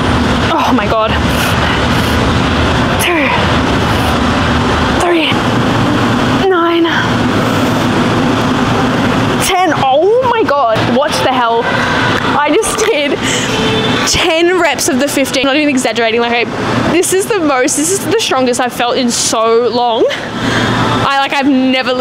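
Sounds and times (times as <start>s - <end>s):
woman breathing heavily: 1.2s - 2.4s, 3.7s - 4.3s, 13.2s - 13.7s, 20.2s - 21.0s.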